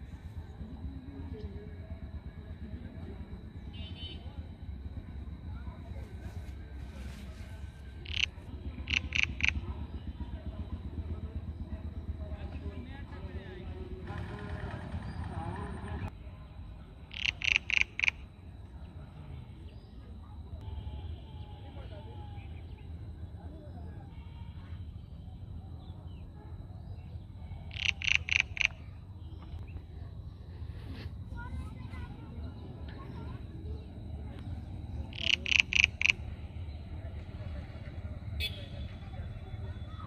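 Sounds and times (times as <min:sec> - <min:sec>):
high-pitched animal calls: 0:08.0 - 0:09.6, 0:17.1 - 0:18.2, 0:27.6 - 0:29.0, 0:35.0 - 0:36.4
frog croaking: 0:08.0 - 0:10.0, 0:17.0 - 0:18.4, 0:27.5 - 0:29.4, 0:34.0 - 0:36.7.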